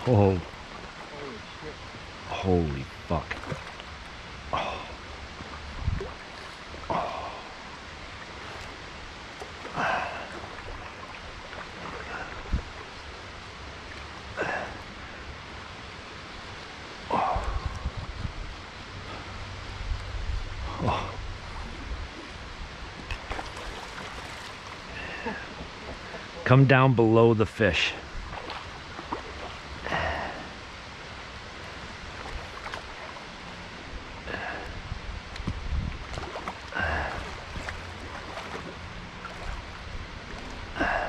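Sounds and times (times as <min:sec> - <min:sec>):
river water rushing: 0:00.0 - 0:41.0.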